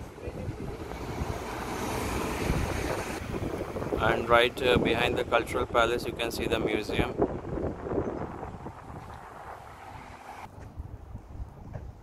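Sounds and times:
faint street noise: 0:00.0 - 0:07.1
wind buffeting microphone: 0:00.0 - 0:12.0.

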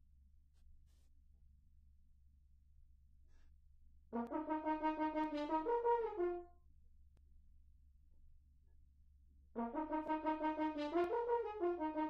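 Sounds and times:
french horn playing: 0:04.2 - 0:06.4, 0:09.6 - 0:12.0.

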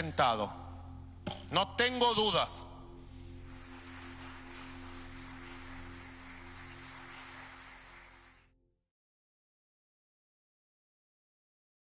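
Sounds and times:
sustained chord music: 0:00.0 - 0:08.7.

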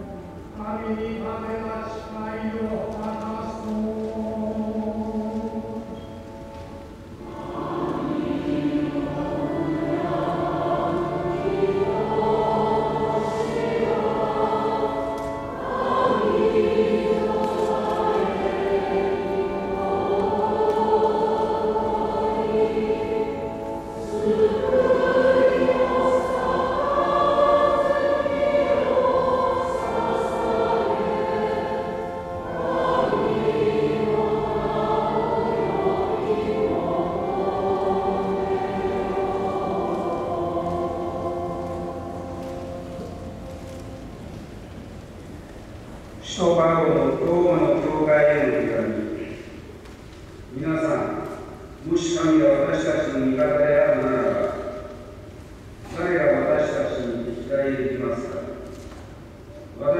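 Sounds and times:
choir singing: 0:00.0 - 0:49.6.

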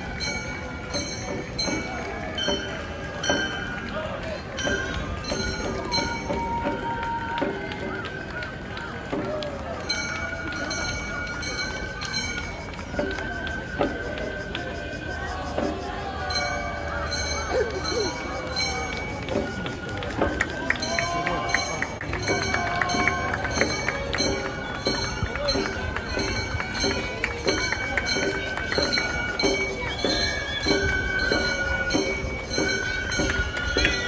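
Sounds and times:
high bamboo flute: 0:00.0 - 0:34.0
murmur of crowd: 0:00.0 - 0:34.0.

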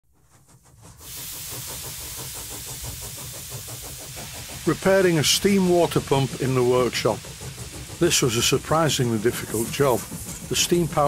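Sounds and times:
steam engine running: 0:00.1 - 0:11.0
steam hissing: 0:00.2 - 0:11.0.

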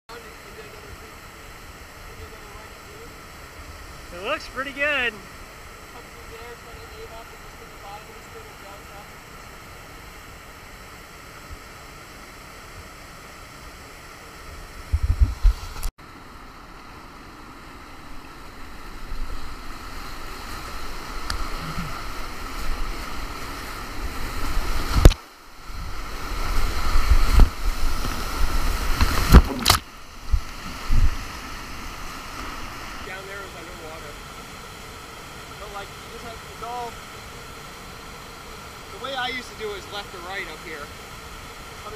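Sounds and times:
whitewater rapids rushing: 0:00.2 - 0:10.4, 0:17.4 - 0:41.9
water splashing on camera: 0:19.0 - 0:33.1.

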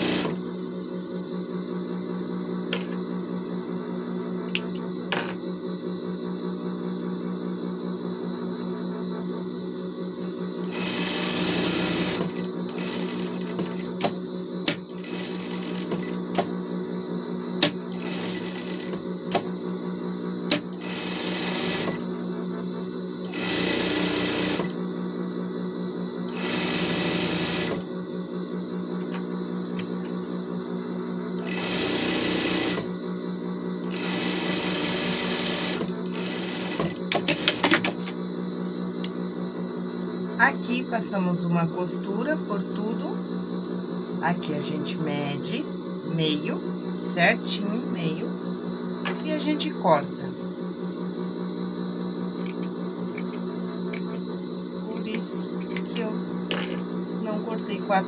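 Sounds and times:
sewing machine stitching: 0:00.0 - 0:00.4, 0:10.7 - 0:14.1, 0:14.7 - 0:16.5, 0:17.6 - 0:19.0, 0:20.5 - 0:22.0, 0:23.3 - 0:24.8, 0:26.3 - 0:27.8, 0:31.4 - 0:32.9, 0:33.8 - 0:37.9
steady low hum: 0:00.0 - 0:58.0.

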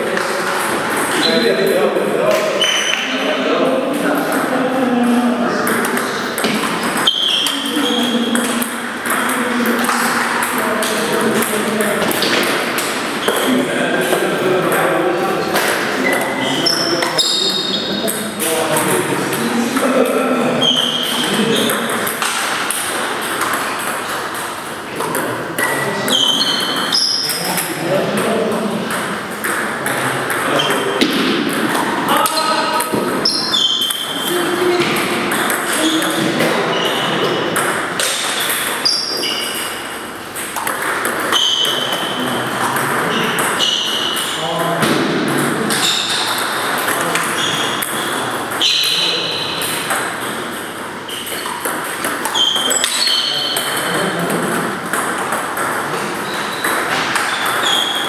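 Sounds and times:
voices talking in a hall: 0:00.0 - 0:58.0
table tennis ball pinging: 0:03.9 - 0:58.0.

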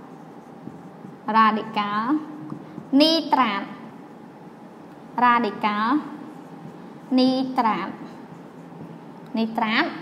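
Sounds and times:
marker writing on whiteboard: 0:00.0 - 0:03.8, 0:04.7 - 0:10.0
woman speaking: 0:01.2 - 0:03.9, 0:05.2 - 0:06.4, 0:07.1 - 0:08.2, 0:09.3 - 0:10.0.

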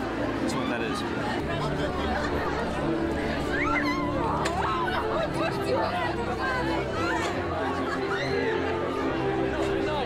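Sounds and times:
crowd chatter: 0:00.0 - 0:10.0
music playing: 0:01.2 - 0:10.0.

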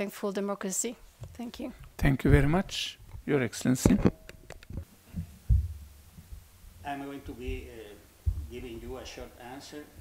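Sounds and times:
microphone handling thumps: 0:01.1 - 0:10.0
man speaking into microphone: 0:02.0 - 0:04.2, 0:06.8 - 0:10.0.

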